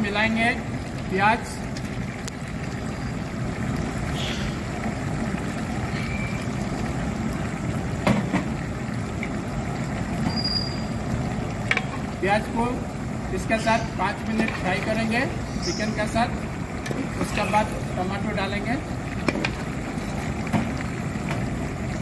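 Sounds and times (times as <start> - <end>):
chicken frying in oil: 0.0 - 22.0.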